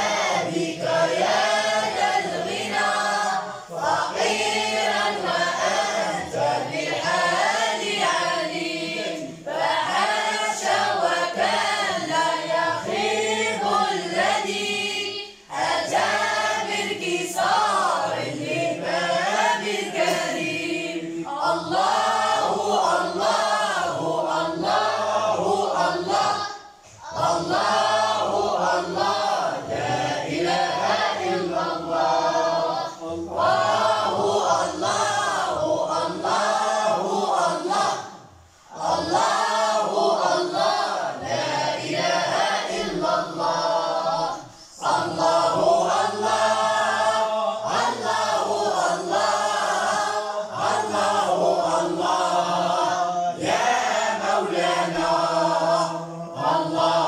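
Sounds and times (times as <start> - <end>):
boys chorus singing unaccompanied: 0.0 - 57.0.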